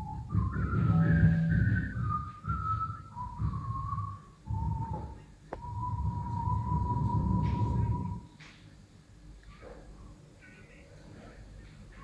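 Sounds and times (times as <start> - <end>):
low rumbling drone: 0.0 - 8.3
whistled tune: 0.0 - 8.3.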